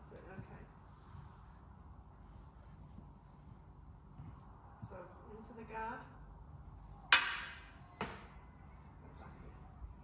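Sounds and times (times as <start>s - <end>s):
fencing blades clashing: 7.1s - 7.8s.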